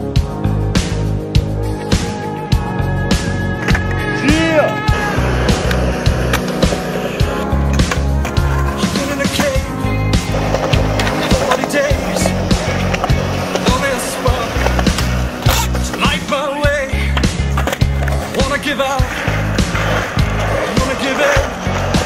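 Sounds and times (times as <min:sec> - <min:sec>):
music: 0:00.0 - 0:22.0
skateboard wheels rolling on concrete: 0:03.2 - 0:22.0
skateboard scraping on ledge: 0:04.9 - 0:22.0
skateboard clacks: 0:07.7 - 0:22.0.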